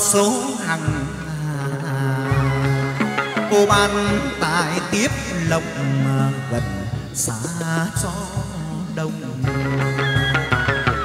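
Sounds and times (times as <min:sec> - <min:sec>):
moon lute ritual music: 0:00.0 - 0:11.0.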